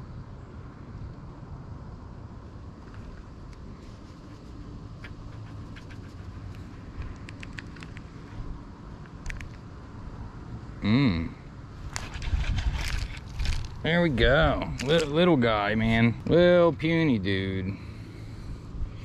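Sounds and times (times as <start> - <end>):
wind buffeting microphone: 11.8 - 15.3.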